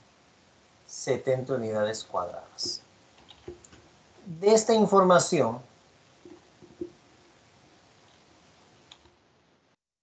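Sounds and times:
faint microphone hiss: 0.0 - 9.8.

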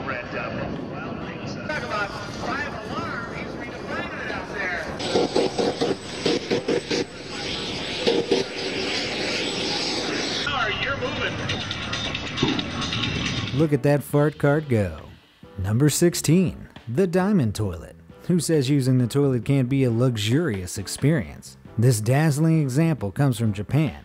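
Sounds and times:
voices: 0.0 - 5.0, 10.4 - 11.9
jet engine running: 0.0 - 15.2.

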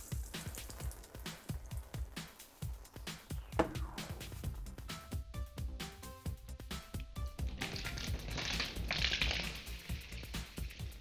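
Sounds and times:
background music with beat: 0.0 - 8.3, 9.4 - 11.0
water splashing on person: 7.6 - 11.0.

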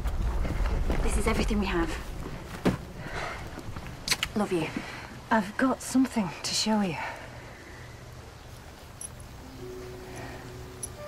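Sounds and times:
soft breath: 9.7 - 11.0.

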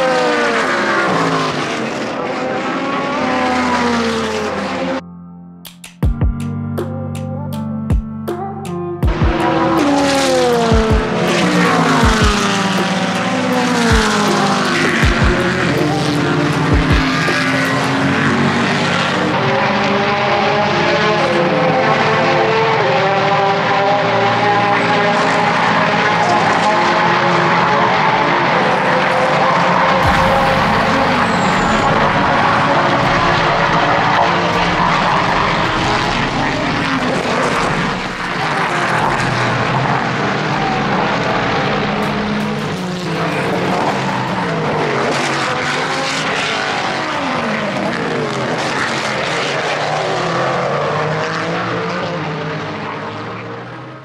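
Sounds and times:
race cars passing at speed: 0.0 - 5.0, 9.4 - 54.0.

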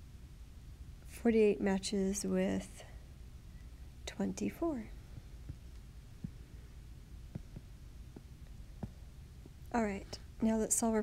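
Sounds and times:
steady low hum: 0.0 - 11.0
stylus tapping on screen: 5.1 - 6.5, 7.3 - 9.7.

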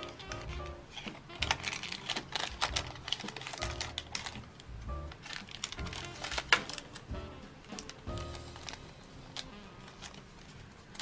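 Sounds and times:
paper clicks and crinkles: 0.0 - 11.0
background music with bass: 2.6 - 5.2, 5.8 - 9.0.

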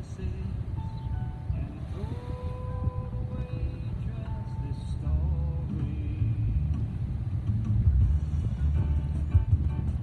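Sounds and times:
car rumbling from inside cabin: 0.0 - 10.0.

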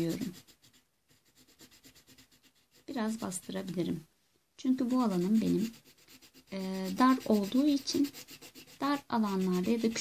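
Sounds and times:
pencil scribbling on paper: 0.0 - 3.9, 4.7 - 10.0.

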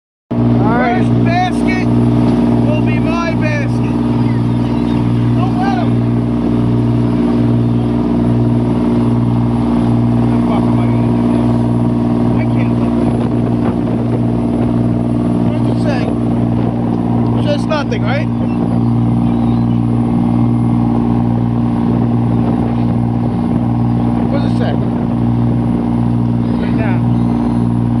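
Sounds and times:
boat engine throbbing drone: 0.3 - 28.0
rush of boat wake: 0.3 - 28.0.

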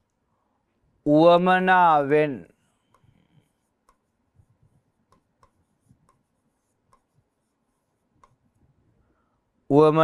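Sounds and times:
stylus tapping on pen tablet: 2.8 - 8.7.

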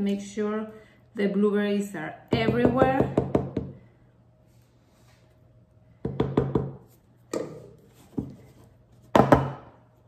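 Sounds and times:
utensils knocking on baking ware: 9.1 - 9.7.

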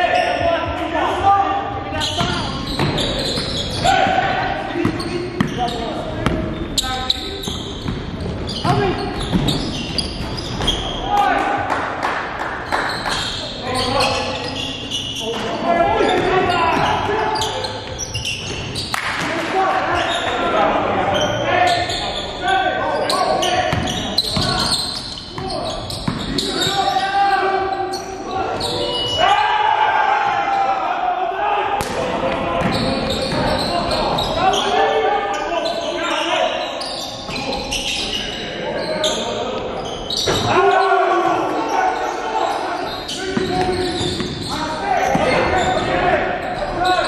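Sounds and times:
players' voices echoing: 0.0 - 47.0
basketball bouncing on gym floor: 2.2 - 3.7, 6.2 - 6.6, 23.7 - 24.7, 25.4 - 26.4, 31.8 - 34.0.

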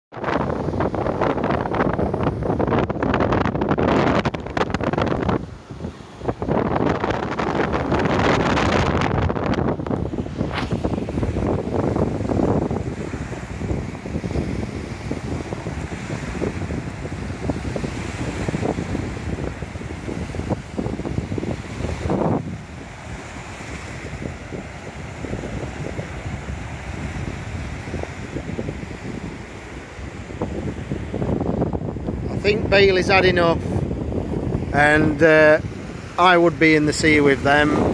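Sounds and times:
wind buffeting microphone: 0.1 - 37.9
breaking surf: 0.2 - 37.9.

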